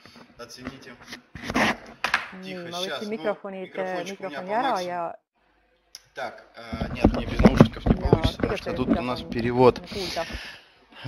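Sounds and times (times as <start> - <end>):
person talking over web conference: 2.4 - 5.1, 6.7 - 10.5.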